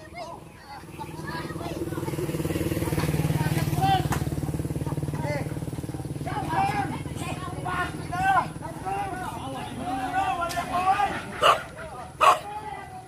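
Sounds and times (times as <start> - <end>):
small motorcycle engine running: 0.0 - 9.6
people shouting short calls: 6.1 - 13.0.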